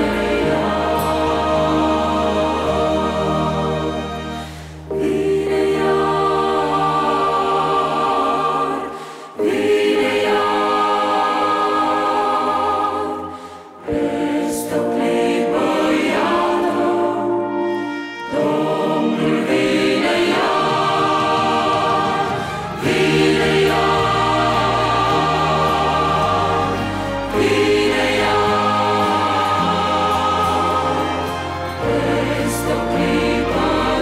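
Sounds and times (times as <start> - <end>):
choir singing: 0.0 - 34.0
digital piano: 0.0 - 34.0
string orchestra with cellos: 17.2 - 34.0.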